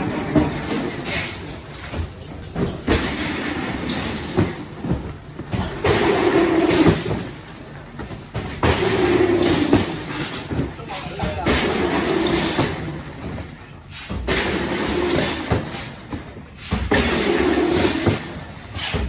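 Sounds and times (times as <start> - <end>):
cartons rolling on roller conveyor: 0.0 - 19.0.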